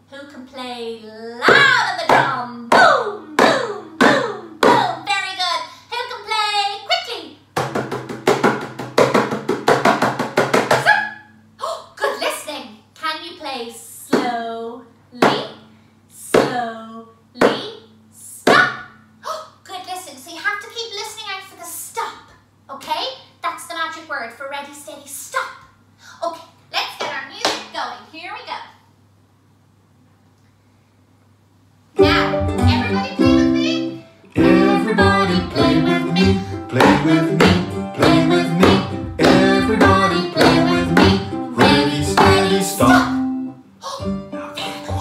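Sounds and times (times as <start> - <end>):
woman speaking: 0.1 - 7.4, 11.6 - 15.6, 16.2 - 28.8, 32.0 - 34.0
hand drum beats: 1.5 - 5.0, 7.6 - 10.9, 32.0 - 33.6, 34.4 - 43.2.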